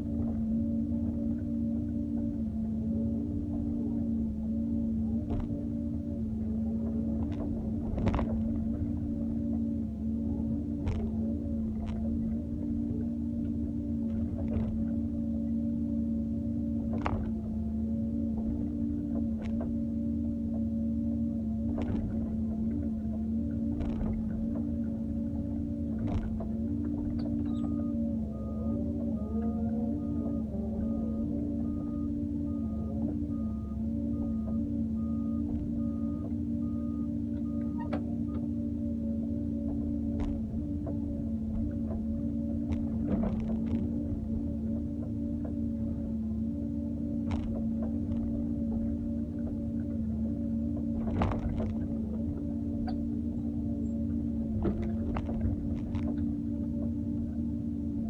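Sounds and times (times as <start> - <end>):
excavator engine and hydraulic whine: 0.0 - 58.0
short beeps: 27.4 - 38.5.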